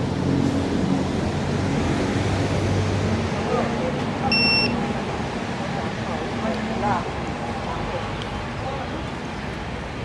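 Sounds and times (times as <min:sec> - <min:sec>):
traffic rumble: 0:00.0 - 0:10.0
short high beep: 0:04.3 - 0:04.8.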